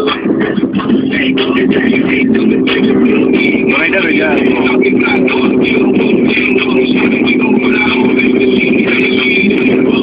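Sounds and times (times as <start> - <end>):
car engine cruising: 0.0 - 10.0
road noise: 0.0 - 10.0
voice from car stereo: 0.0 - 10.0.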